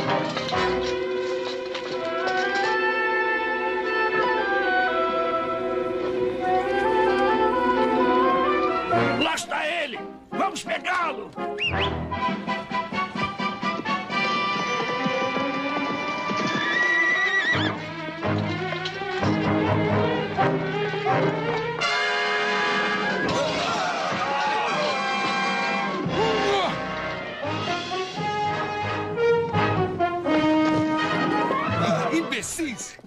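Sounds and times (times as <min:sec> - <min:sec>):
orchestral film score: 0:00.0 - 0:33.0
hoofbeats: 0:11.4 - 0:33.0
horse whinnying: 0:14.2 - 0:17.8.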